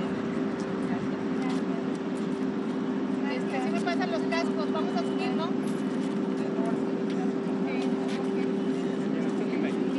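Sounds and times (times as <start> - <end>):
low mechanical hum: 0.0 - 9.9.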